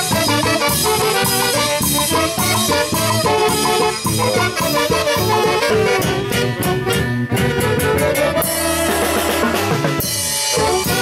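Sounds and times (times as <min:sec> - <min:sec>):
drum kit with timbales: 0:00.0 - 0:11.0
electric bass: 0:00.0 - 0:11.0
saxophones playing melody: 0:00.0 - 0:11.0.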